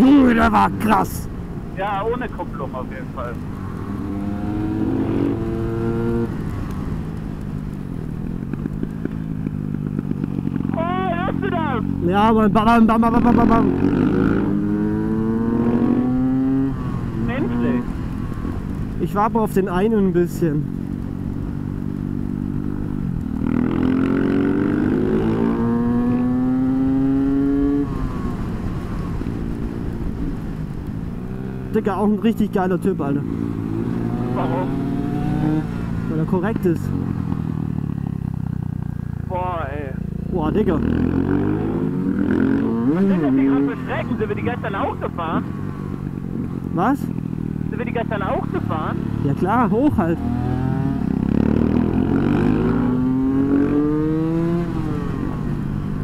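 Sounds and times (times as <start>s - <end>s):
motorcycle engine revving: 0.0s - 31.8s, 32.6s - 56.0s.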